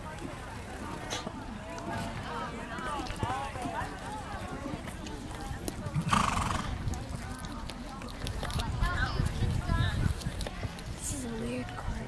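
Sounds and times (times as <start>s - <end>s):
horse hoofbeats on dirt: 0.0s - 12.0s
spectators' voices: 0.0s - 12.0s
horse whinny: 6.0s - 6.8s.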